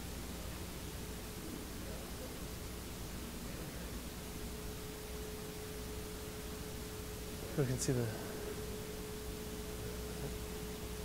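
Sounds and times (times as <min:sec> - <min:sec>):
faint low hum: 0:00.0 - 0:11.0
steady hiss: 0:00.0 - 0:11.0.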